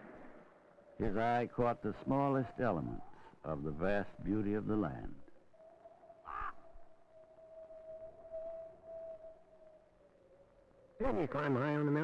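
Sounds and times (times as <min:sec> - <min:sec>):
faint steady held tone: 0:00.0 - 0:12.0
raven calling: 0:02.1 - 0:12.0.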